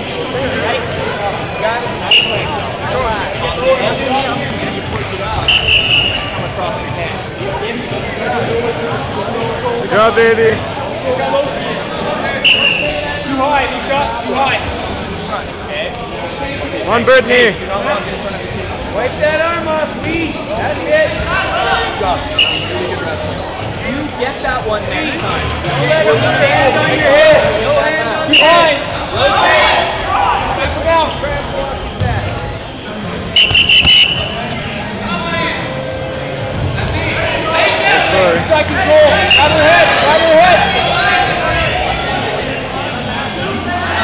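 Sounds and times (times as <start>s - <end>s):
crowd chatter: 0.0s - 44.0s
spectators talking and calling out: 0.0s - 44.0s
referee's whistle blast: 2.1s - 2.5s, 5.5s - 6.4s, 12.4s - 13.0s, 22.4s - 22.8s, 28.3s - 28.7s, 33.4s - 34.5s, 39.2s - 39.7s.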